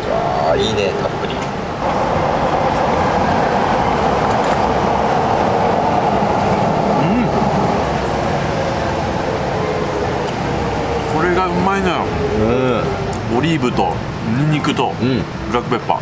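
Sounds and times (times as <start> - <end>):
passing vehicle rumbling: 0.0 - 16.0.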